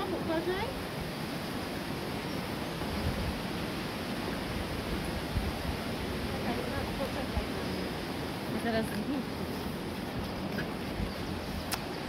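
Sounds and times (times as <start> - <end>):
waterfall rushing: 0.0 - 12.0.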